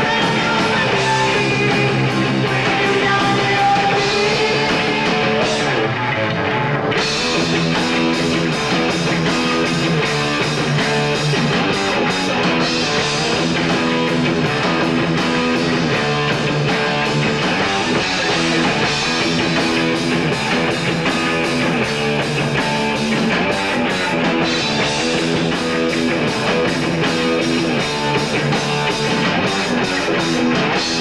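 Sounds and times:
drum kit: 0.0 - 31.0
electric guitar: 0.0 - 31.0.

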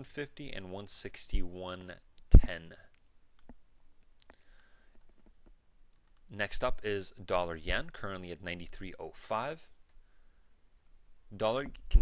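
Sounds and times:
computer mouse clicking: 4.2 - 6.3.

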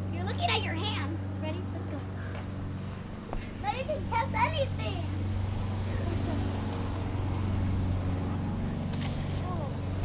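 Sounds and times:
rushing noise of bike ride: 0.0 - 10.0.

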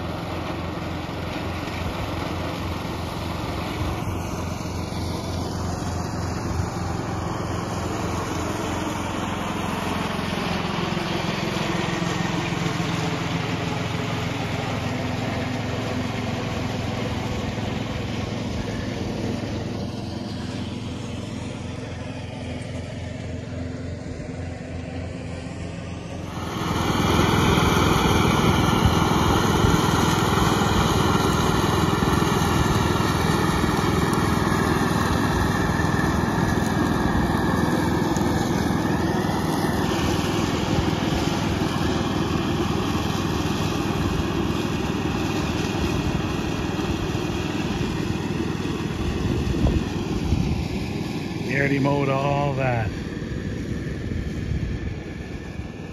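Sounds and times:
lawn tractor engine and mower deck: 0.0 - 55.9.

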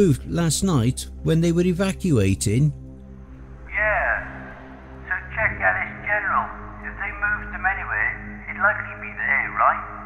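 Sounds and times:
low steady drone: 0.0 - 10.0
person speaking over telephone: 5.1 - 10.0.

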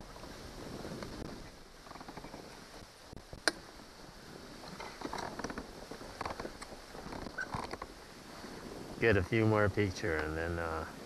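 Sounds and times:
fishing gear clicks and taps: 10.1 - 10.4.

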